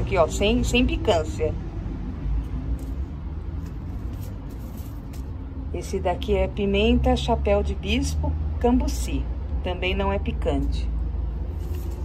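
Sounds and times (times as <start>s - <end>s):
paper seed packets rustling: 2.7s - 5.4s, 11.5s - 12.0s.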